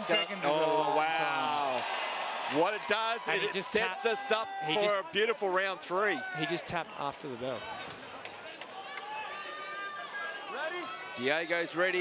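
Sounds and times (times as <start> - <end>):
crowd background: 0.0 - 12.0.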